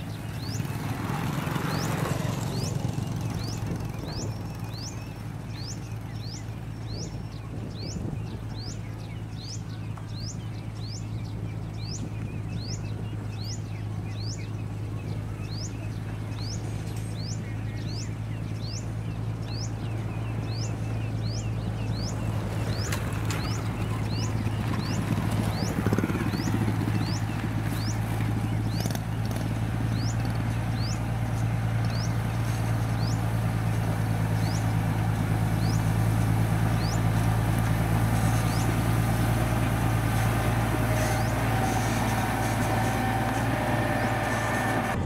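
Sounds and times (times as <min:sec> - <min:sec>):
diesel engine running: 0:00.0 - 0:45.0
motorbikes passing: 0:00.0 - 0:45.0.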